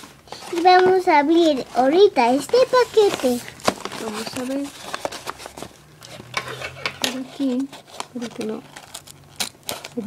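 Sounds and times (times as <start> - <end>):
paper envelope crinkling: 2.4 - 6.4, 7.0 - 10.0.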